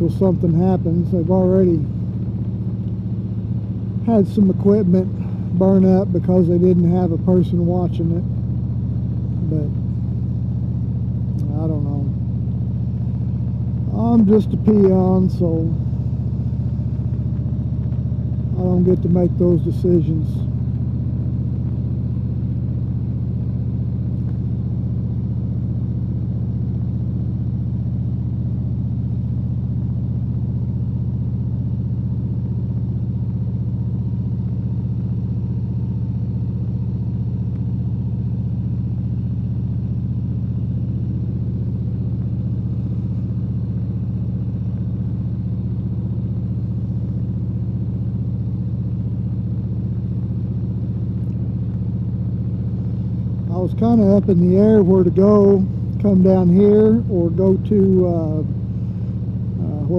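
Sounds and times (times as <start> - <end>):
motorcycle engine cruising: 0.0 - 59.9.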